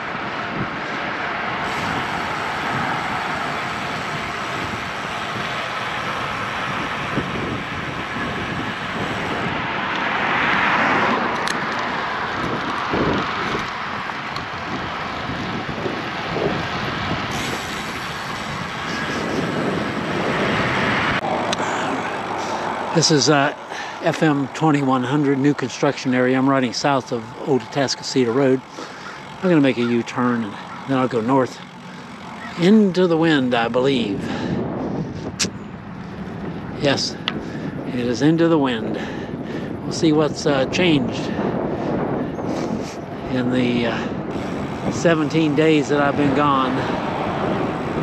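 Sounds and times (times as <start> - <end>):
bicycle tyre and road noise: 0.0 - 48.0
wind rushing over microphone: 0.0 - 48.0.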